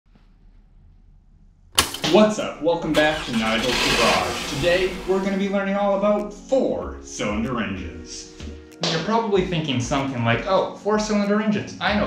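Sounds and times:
sudden loud burst of noise: 2.9s - 5.6s.

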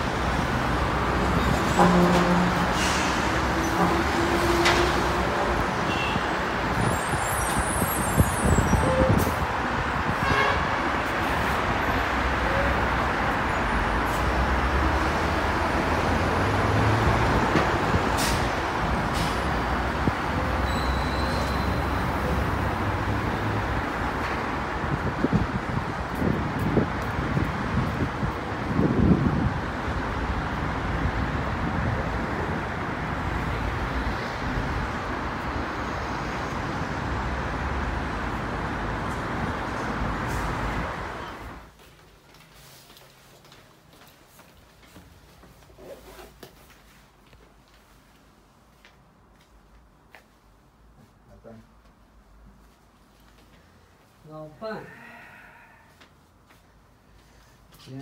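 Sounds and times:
cars and buses passing: 0.0s - 58.0s.

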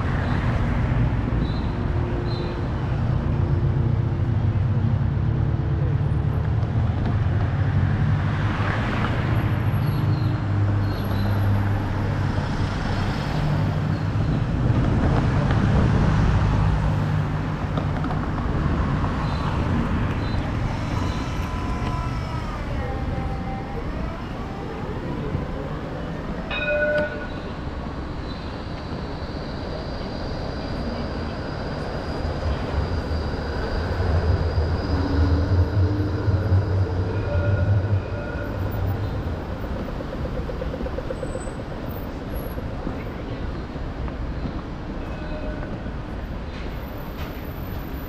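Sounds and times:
city street traffic: 0.0s - 48.0s
tram rumbling past: 0.0s - 48.0s.

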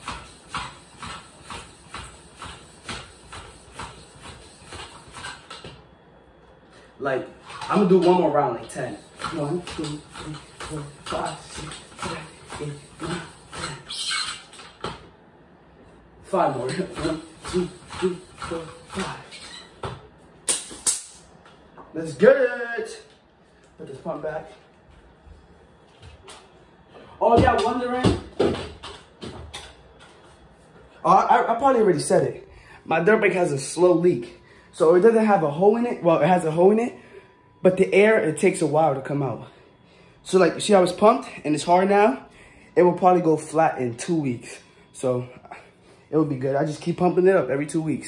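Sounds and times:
hand pump air whooshes: 0.0s - 5.6s, 8.8s - 14.9s, 16.3s - 19.8s.

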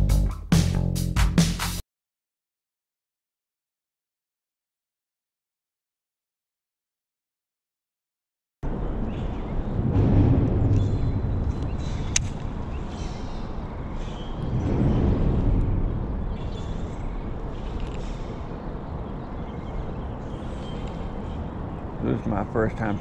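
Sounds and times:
traffic rumbling across bridge: 8.6s - 23.0s
sharp click: 12.1s - 12.5s.

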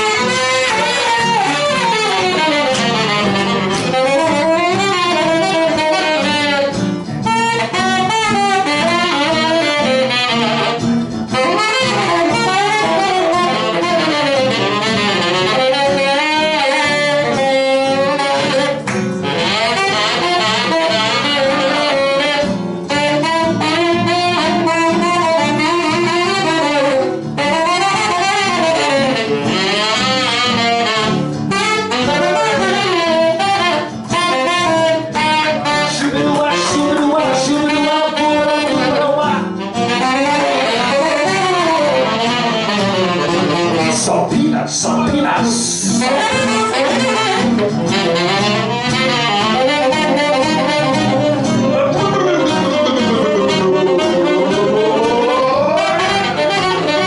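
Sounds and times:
bass accompaniment: 0.0s - 57.0s
guitar accompaniment: 0.0s - 57.0s
tenor saxophone jazz solo: 0.0s - 57.0s.

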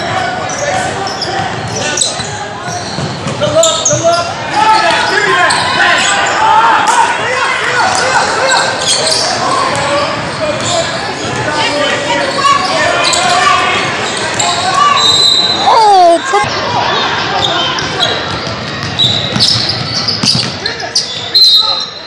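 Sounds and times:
hubbub of many voices: 0.0s - 22.0s
basketball bouncing on hardwood floor: 18.4s - 20.5s.

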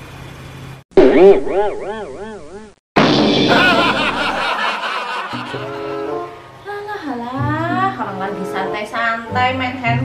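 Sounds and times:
comic laughter sound effect: 3.4s - 6.3s
background music with held notes: 5.5s - 10.0s.

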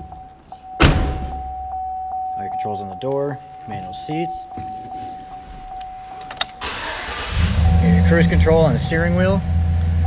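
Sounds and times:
vehicle warning chime: 0.0s - 10.0s
engine starter cranking: 6.5s - 7.8s.

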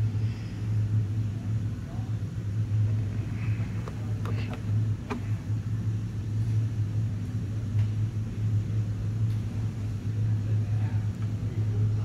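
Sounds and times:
faint rumble: 0.0s - 12.0s
low mechanical hum: 0.0s - 12.0s.

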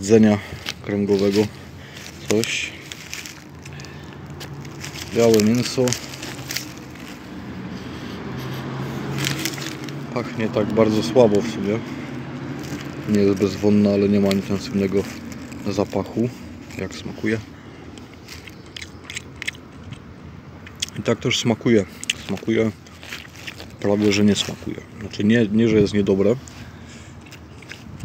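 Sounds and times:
vehicle engine hum: 0.0s - 28.0s
person chewing: 0.5s - 10.1s, 11.8s - 13.4s, 14.2s - 15.8s, 17.8s - 21.0s, 21.8s - 24.7s, 26.6s - 28.0s.

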